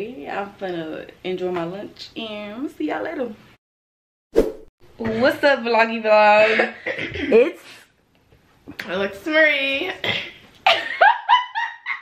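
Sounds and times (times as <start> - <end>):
woman laughing: 6.4 - 7.6, 10.0 - 12.0.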